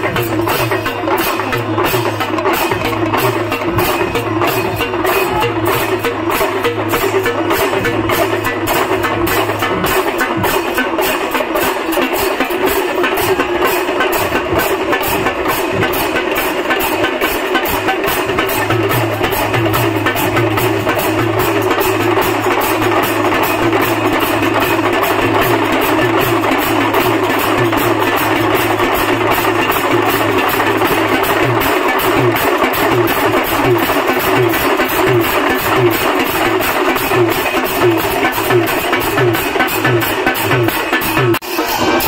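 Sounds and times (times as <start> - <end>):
brass hand cymbals: 0.0 - 42.0
drums: 0.0 - 42.0
regular deep beat: 0.0 - 42.0.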